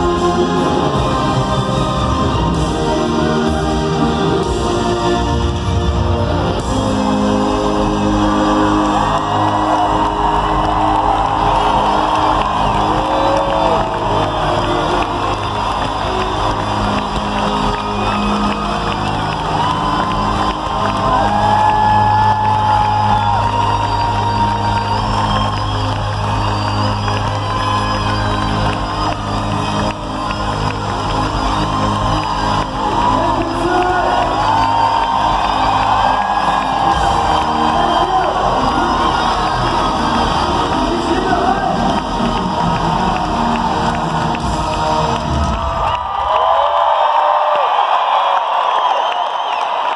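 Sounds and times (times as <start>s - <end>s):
crowd cheering and screaming: 0.0s - 49.9s.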